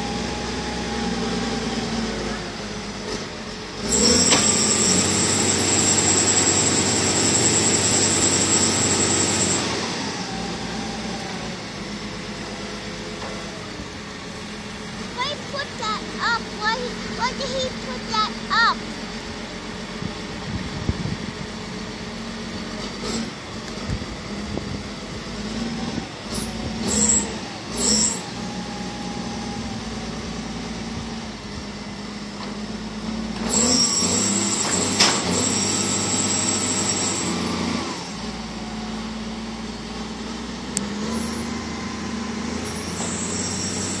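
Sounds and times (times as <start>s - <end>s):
snow plow engine running: 0.0s - 44.0s.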